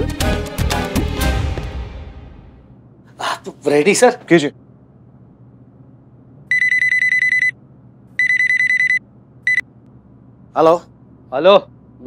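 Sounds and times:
phone ringing: 6.5s - 7.6s, 8.2s - 9.6s.

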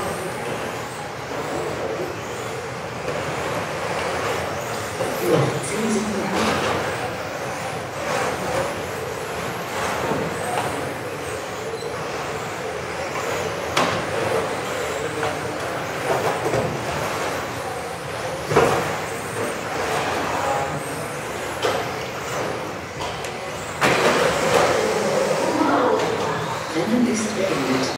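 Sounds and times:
rc car motor whine: 0.0s - 27.9s
cars hitting track edges: 2.3s - 25.1s.

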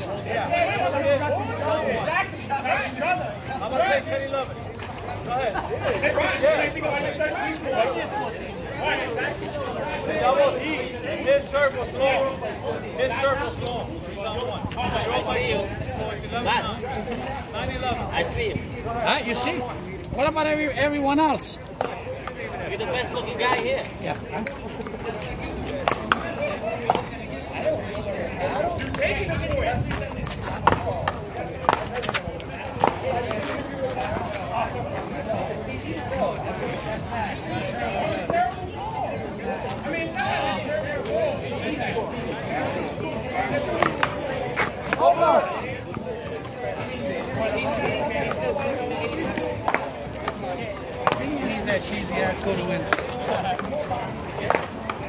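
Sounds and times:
men talking and calling out: 0.0s - 55.0s
players' voices: 0.0s - 55.0s.

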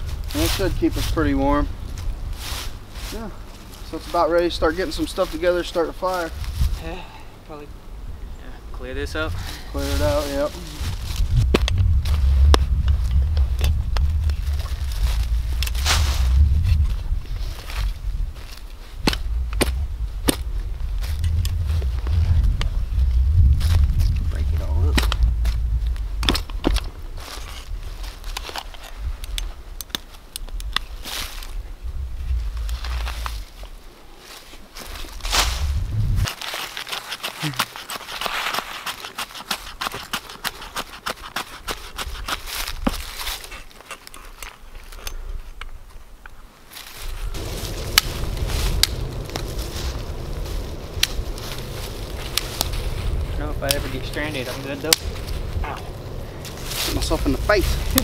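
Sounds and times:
wind rumble on microphone: 0.0s - 2.9s, 6.3s - 6.9s, 7.9s - 29.7s, 30.4s - 33.8s, 35.0s - 36.3s, 47.0s - 58.0s
shovel scraping and digging dirt: 9.4s - 22.2s, 34.8s - 45.1s, 47.0s - 58.0s
dry sticks snapping: 11.5s - 11.8s, 12.5s - 16.9s, 17.6s - 21.6s, 24.9s - 31.6s, 47.4s - 58.0s
knife shaving wood: 36.3s - 44.4s.

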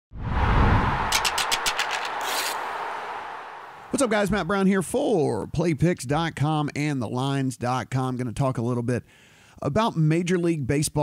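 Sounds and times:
deep rumbling whoosh: 0.1s - 1.6s.

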